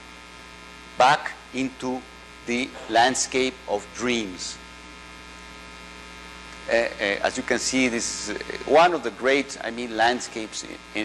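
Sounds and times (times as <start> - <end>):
electrical mains hum: 0.0 - 11.0
man saying uh: 1.0 - 4.6, 6.6 - 11.0.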